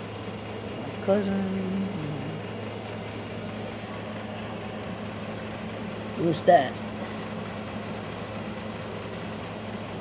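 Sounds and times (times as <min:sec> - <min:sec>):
low machine hum: 0:00.0 - 0:10.0.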